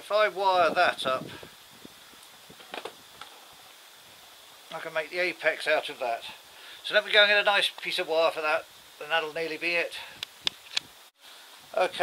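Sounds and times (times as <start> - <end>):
background hiss: 0.0 - 12.0
faint ticks and rustles: 1.3 - 12.0.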